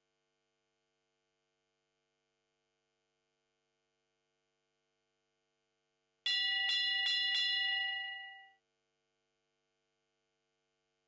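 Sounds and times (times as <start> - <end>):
bell strokes ringing: 6.3 - 8.5.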